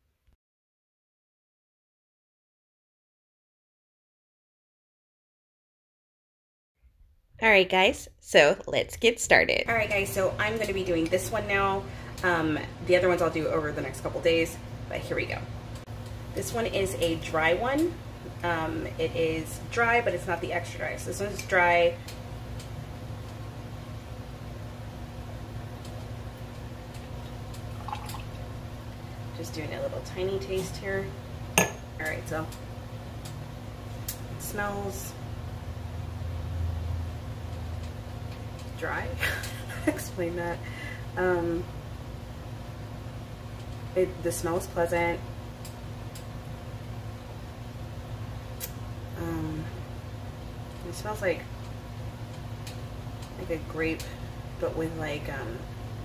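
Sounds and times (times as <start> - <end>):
steady low hum: 7.0 - 56.0
wine trickling into glass: 27.2 - 28.4.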